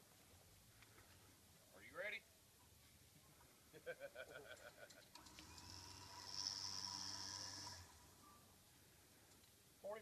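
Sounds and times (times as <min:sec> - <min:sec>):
winch humming and whining: 0:05.2 - 0:08.5.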